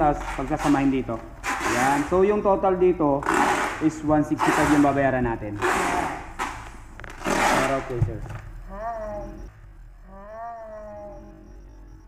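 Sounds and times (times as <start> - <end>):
drawn-out meow-like call: 8.7 - 12.0.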